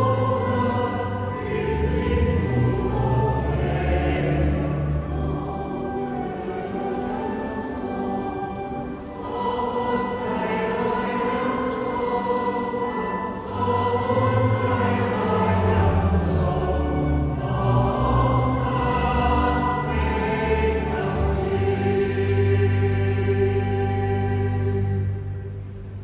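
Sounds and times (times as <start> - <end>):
choir singing: 0.0 - 26.0.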